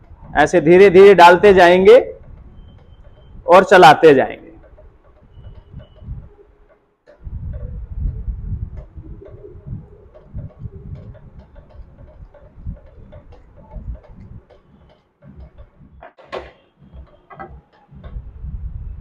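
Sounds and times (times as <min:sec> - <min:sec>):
spatula stirring thick batter: 0:00.0 - 0:07.7, 0:08.8 - 0:17.9
spatula knocking metal pan: 0:08.8 - 0:18.2.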